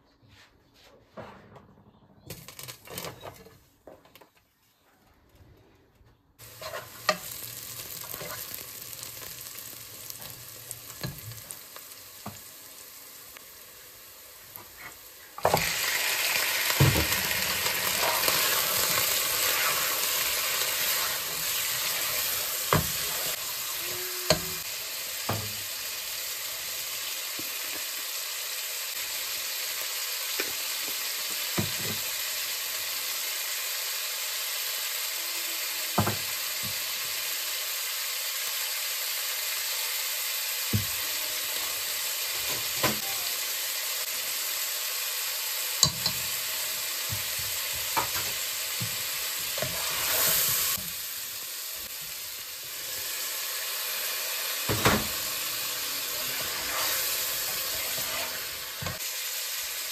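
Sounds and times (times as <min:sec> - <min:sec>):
meat sizzling in hot oil: 0:06.4 - 0:59.9.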